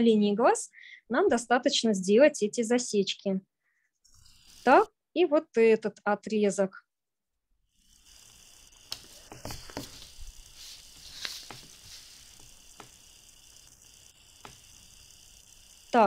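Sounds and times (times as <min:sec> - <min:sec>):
pencil scratching on paper: 0:04.2 - 0:04.9, 0:07.7 - 0:16.0
pencil ticks: 0:07.8 - 0:16.0.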